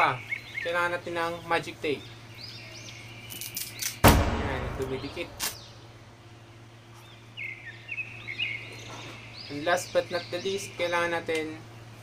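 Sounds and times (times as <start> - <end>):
small birds chirping: 0.0 - 4.0, 4.9 - 12.0.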